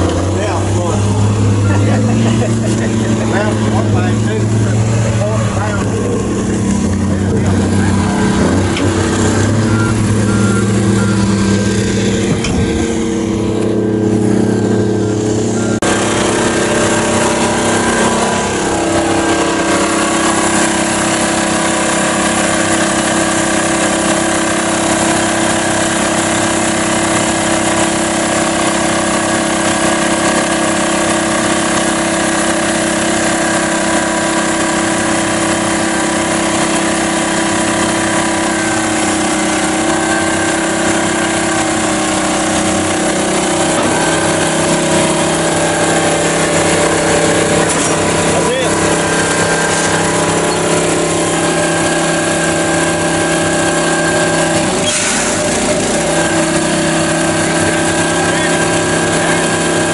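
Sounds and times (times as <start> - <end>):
droning hum: 0.0 - 21.9
heavy diesel engines running: 0.0 - 59.9
higher steady tone: 0.1 - 23.3.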